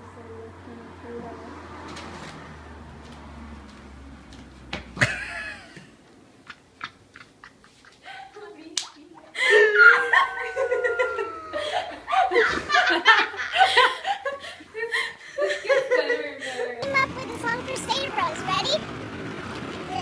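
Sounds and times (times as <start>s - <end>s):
women laughing and giggling: 5.0s - 8.6s, 9.2s - 16.9s
high squeal: 9.5s - 11.6s.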